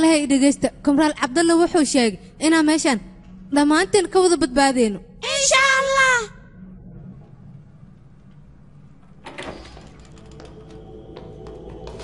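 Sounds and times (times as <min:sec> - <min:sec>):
low background ambience: 0:00.0 - 0:12.0.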